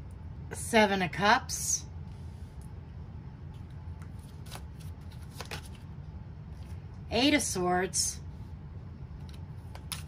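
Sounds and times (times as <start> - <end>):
steady low hum: 0.0 - 10.0
cards flicking and sliding: 4.1 - 5.8.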